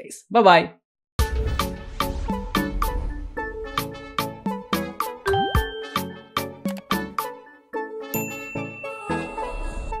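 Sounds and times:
bell-like music jingle: 0:05.2 - 0:06.5, 0:08.1 - 0:09.6
high notification bell ding: 0:05.3 - 0:06.2, 0:08.2 - 0:09.1.

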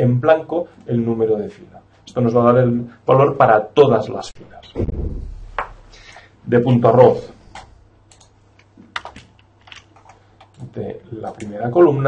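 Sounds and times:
computer keyboard typing: 0:07.5 - 0:11.6.

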